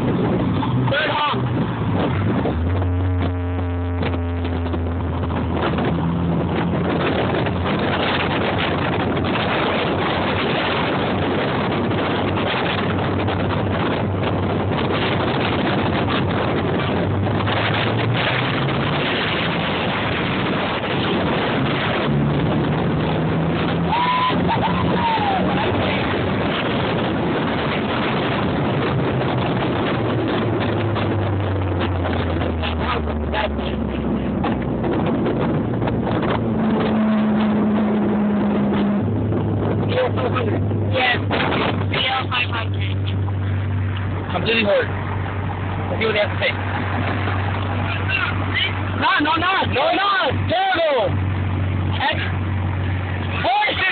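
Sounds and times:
road and wind noise: 0.0 - 53.9.

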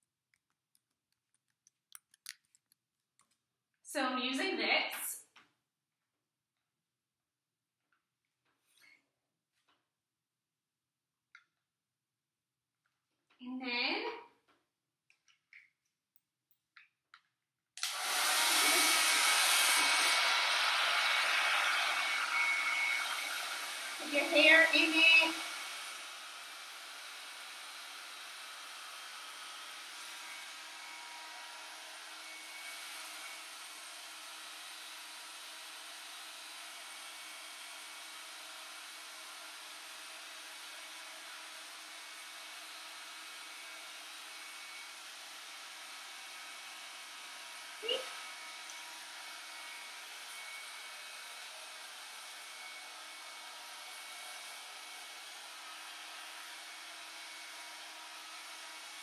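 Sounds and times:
hair dryer running: 17.8 - 59.0.

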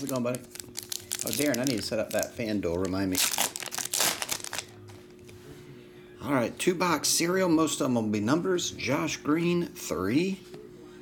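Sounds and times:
foil wrapper crinkling and tearing: 0.0 - 4.8.

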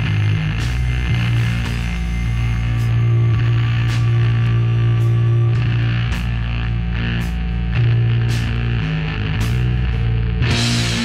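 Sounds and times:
heavy rock band playing: 0.0 - 11.0.

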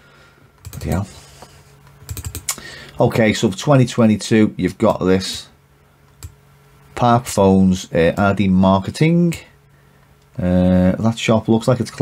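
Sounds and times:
faint steady hum: 0.0 - 12.0
keyboard keys tapping: 0.6 - 1.0, 2.0 - 2.6.

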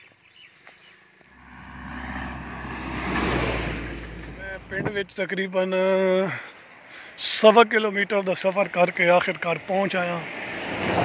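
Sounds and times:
truck engine rumble: 1.3 - 5.4.

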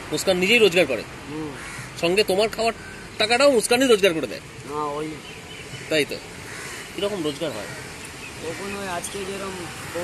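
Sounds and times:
crows cawing: 1.3 - 3.4, 5.5 - 9.6.

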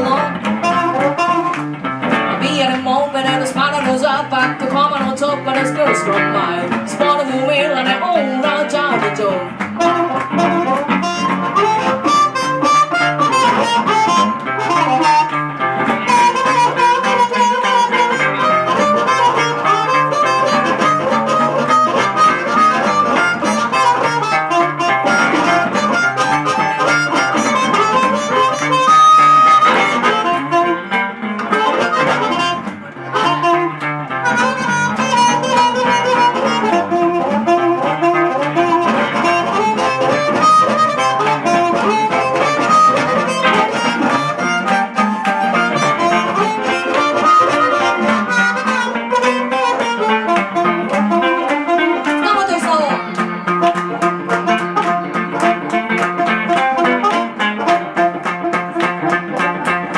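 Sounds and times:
blues harmonica solo: 0.0 - 59.9
guitar accompaniment: 0.0 - 59.9.

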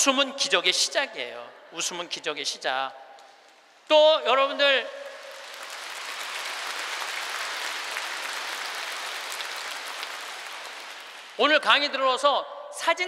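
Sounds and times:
large audience clapping: 5.0 - 11.6.

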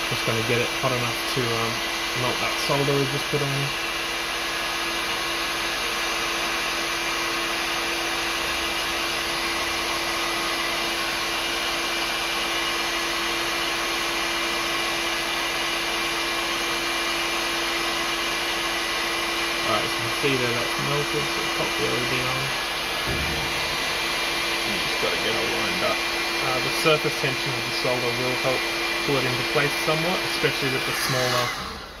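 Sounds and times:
heat gun blowing air: 0.0 - 32.0.

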